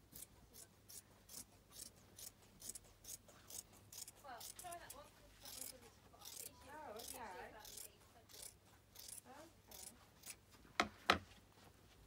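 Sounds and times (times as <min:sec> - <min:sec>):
scissors snipping fabric: 0:00.1 - 0:10.4.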